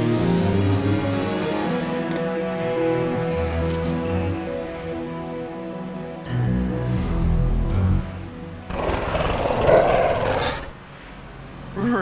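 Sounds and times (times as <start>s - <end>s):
music: 0.0s - 11.8s.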